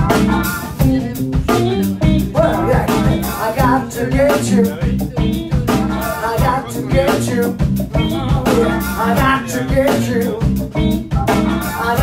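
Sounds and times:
saxophones: 0.0 - 3.8
drum kit steady beat: 0.0 - 12.0
electric guitar: 0.0 - 12.0
keyboard: 0.0 - 12.0
live funk band playing: 0.0 - 12.0.

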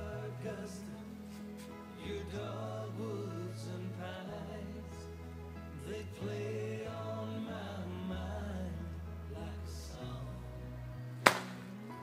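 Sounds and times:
country song with man singing: 0.0 - 11.0
golf club striking ball: 11.2 - 11.6.

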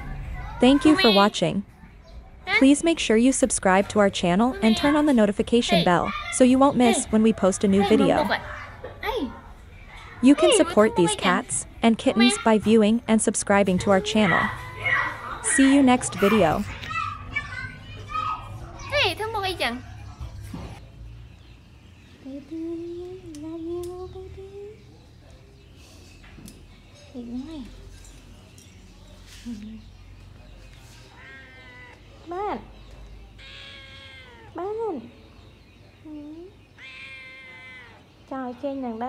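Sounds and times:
kitten meowing: 33.4 - 34.5, 36.8 - 38.0.

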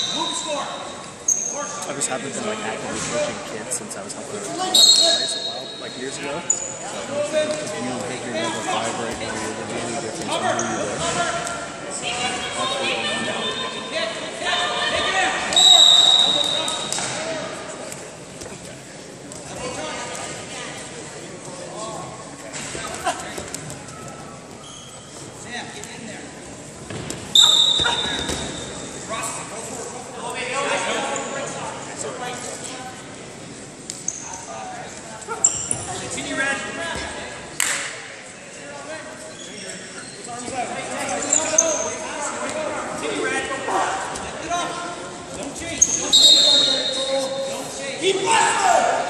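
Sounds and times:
voices echoing in hall: 0.0 - 49.0
referee's whistle blast: 15.5 - 16.9, 27.3 - 28.7, 46.0 - 47.2
shoes squeaking on mat: 23.3 - 25.9, 26.9 - 29.0, 39.3 - 42.1
people shouting: 48.0 - 49.0.

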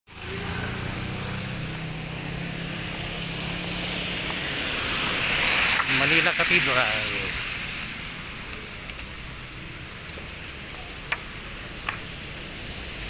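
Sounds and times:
tyres hissing on wet road: 0.1 - 13.0.

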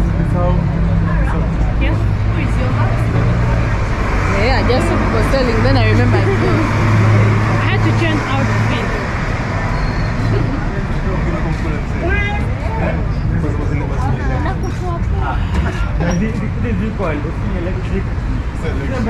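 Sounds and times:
people chatting: 0.0 - 9.1, 10.2 - 19.0
vehicle engine hum: 0.0 - 19.0.

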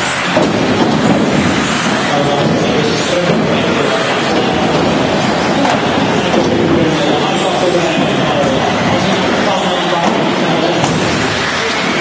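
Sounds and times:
rc cars racing indoors: 0.0 - 12.0.

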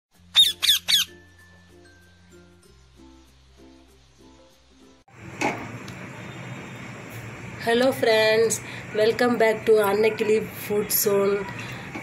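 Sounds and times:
light background music: 0.1 - 5.2, 7.1 - 12.0.

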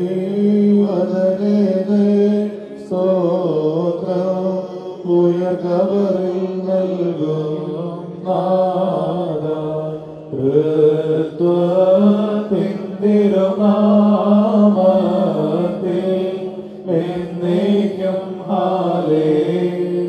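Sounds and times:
man chanting into a microphone: 0.0 - 20.0.

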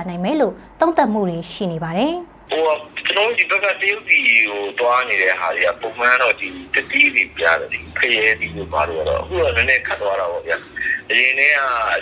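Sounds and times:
man talking: 2.5 - 12.0.

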